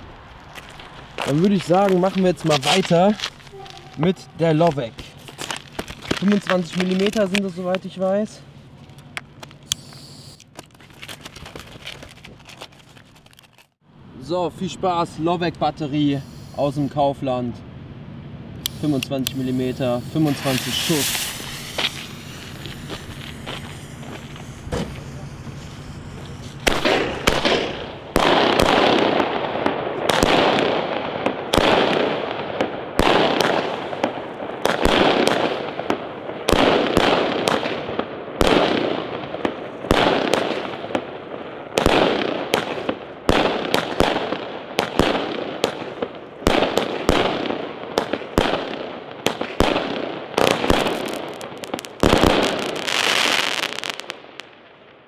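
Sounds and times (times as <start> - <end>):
firework battery bangs: 18.6 - 54.6.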